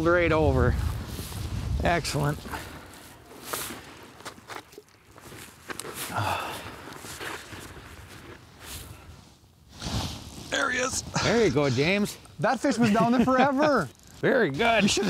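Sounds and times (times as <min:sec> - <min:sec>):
winter clothing rustling: 0:00.0 - 0:15.0
boots crunching on snow: 0:00.8 - 0:09.1.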